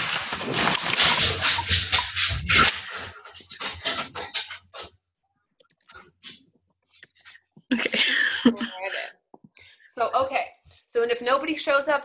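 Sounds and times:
computer keyboard typing: 5.6 - 7.6.

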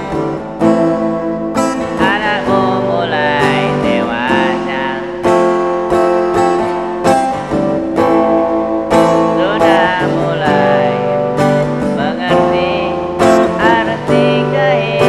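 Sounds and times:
man singing: 0.0 - 0.9, 1.6 - 7.3, 8.8 - 15.0
strummed acoustic guitar: 0.0 - 15.0.

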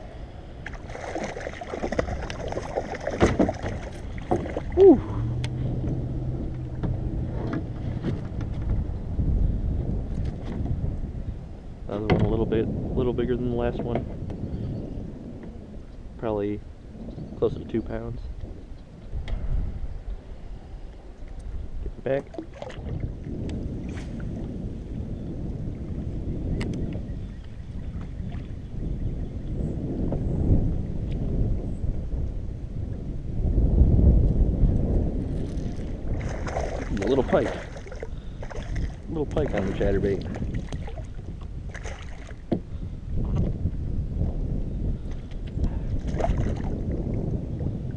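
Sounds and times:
wind rumbling on microphone: 0.0 - 47.9
water splashes: 0.6 - 5.7, 22.1 - 24.5, 35.3 - 42.6, 45.9 - 47.1
knocks on kayak: 3.1 - 4.6.

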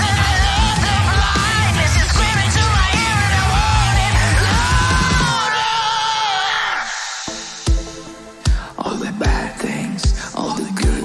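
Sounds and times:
hard rock drums and bass: 0.0 - 5.6.

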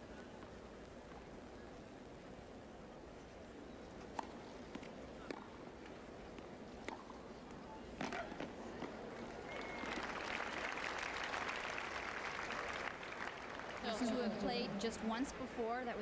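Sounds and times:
racket striking tennis ball: 6.3 - 7.2
crowd applause: 9.1 - 14.4.

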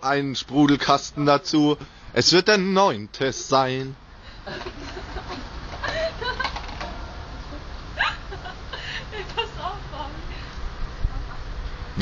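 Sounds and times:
voices and giggling: 4.3 - 10.6.

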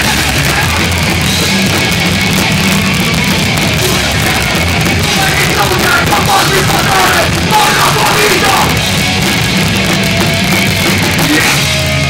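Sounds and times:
punk band playing live: 0.0 - 12.0.

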